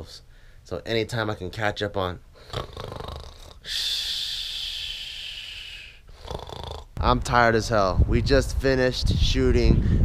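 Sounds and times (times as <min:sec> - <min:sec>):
man snoring: 0:02.5 - 0:04.2, 0:05.8 - 0:06.9.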